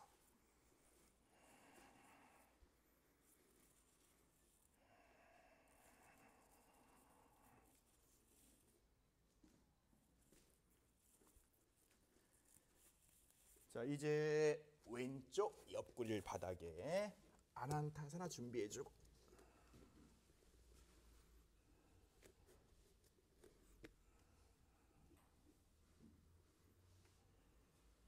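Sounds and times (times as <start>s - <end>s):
faint slow breaths: 0.0s - 8.7s, 19.0s - 28.0s.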